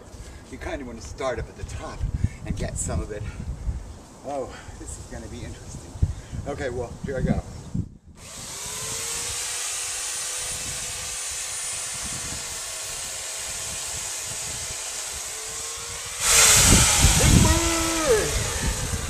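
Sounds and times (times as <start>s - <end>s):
electric chainsaw cutting branches: 8.2s - 19.0s.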